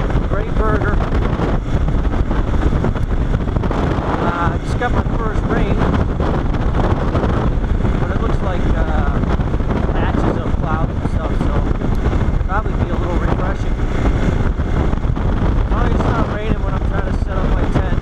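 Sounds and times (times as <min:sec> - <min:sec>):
motorcycle engine running: 0:00.0 - 0:18.0
wind noise on microphone: 0:00.0 - 0:18.0.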